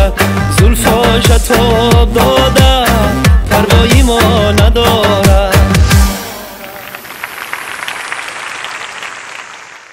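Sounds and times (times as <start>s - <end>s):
audience applauding: 6.4s - 9.9s.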